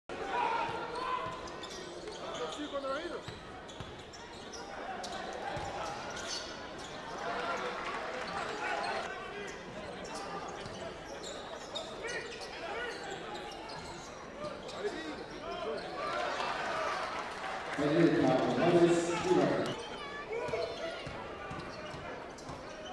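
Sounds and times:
voices of players and crowd: 0:00.1 - 0:22.9
basketball bouncing on court: 0:20.4 - 0:22.8.

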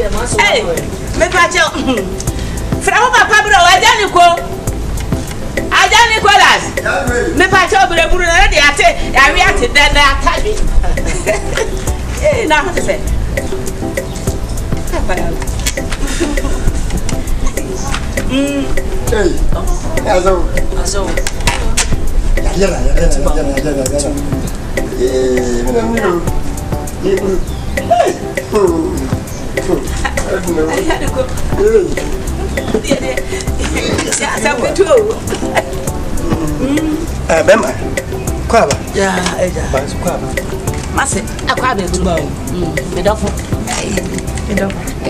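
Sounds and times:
people talking: 0:00.0 - 0:02.2, 0:05.7 - 0:11.3, 0:12.2 - 0:13.0, 0:14.9 - 0:15.4, 0:17.4 - 0:24.3, 0:25.0 - 0:26.4, 0:27.0 - 0:37.8, 0:38.5 - 0:40.3, 0:40.9 - 0:44.8
voices: 0:00.0 - 0:45.0.

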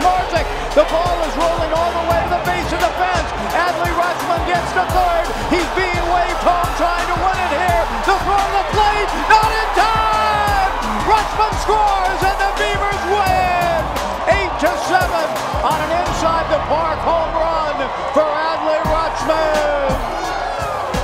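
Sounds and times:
crowd shouting and cheering: 0:00.0 - 0:21.0
music: 0:00.0 - 0:21.0.

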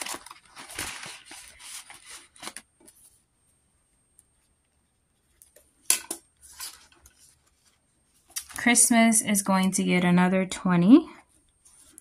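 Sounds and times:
page turning: 0:00.0 - 0:03.2, 0:06.4 - 0:08.6
banknotes rustling: 0:00.0 - 0:03.3, 0:06.4 - 0:08.8.

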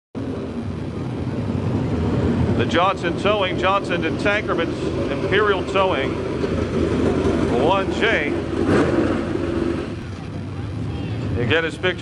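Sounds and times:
race car engine running: 0:00.2 - 0:12.0.

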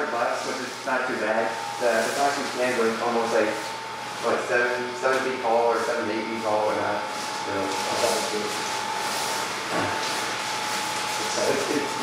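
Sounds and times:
blower fan whine and hiss: 0:00.0 - 0:12.0.

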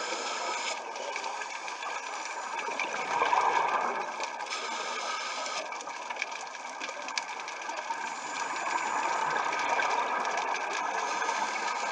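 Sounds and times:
underwater bubbling: 0:00.0 - 0:11.9.

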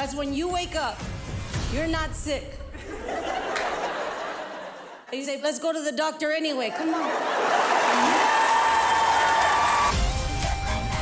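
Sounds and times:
audience applauding and cheering: 0:06.9 - 0:11.0.

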